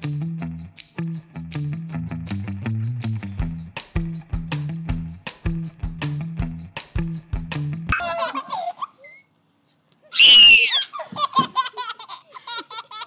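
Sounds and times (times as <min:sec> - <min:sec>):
music with steady beat: 0:00.0 - 0:07.9
child squealing with laughter: 0:07.9 - 0:09.3, 0:10.0 - 0:13.0.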